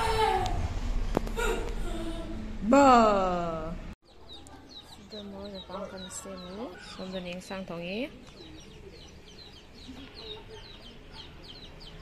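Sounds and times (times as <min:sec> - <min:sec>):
chickens peeping: 0:04.1 - 0:12.0.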